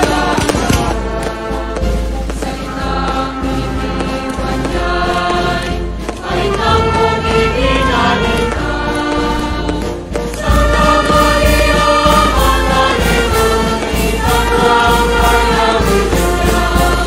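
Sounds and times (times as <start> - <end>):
choir singing with instruments: 0.0 - 17.0.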